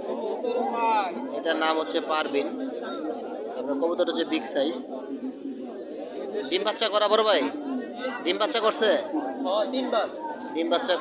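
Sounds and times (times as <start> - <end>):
market chatter: 0.0 - 11.0.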